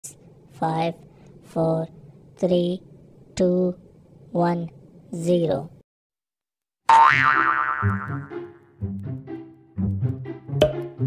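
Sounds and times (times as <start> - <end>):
cartoon boing sound effect: 6.9 - 8.4.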